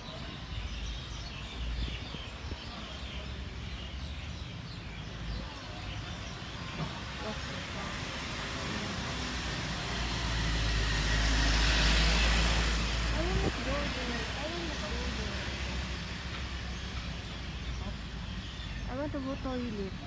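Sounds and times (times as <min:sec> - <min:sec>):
truck driving past: 0:06.9 - 0:17.4.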